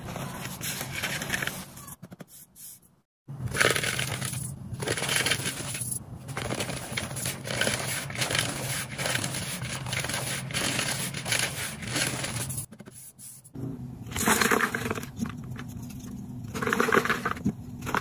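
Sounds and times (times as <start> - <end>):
chalk crushing crackle: 3.6 - 13.4.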